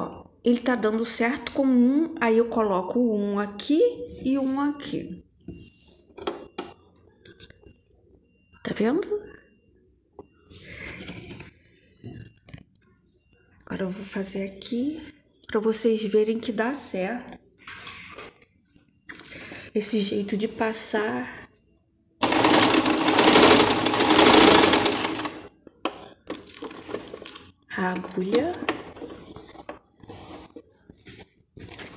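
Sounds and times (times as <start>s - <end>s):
sewing machine running fast: 22.2s - 25.5s
fabric rustling: 28.9s - 31.9s.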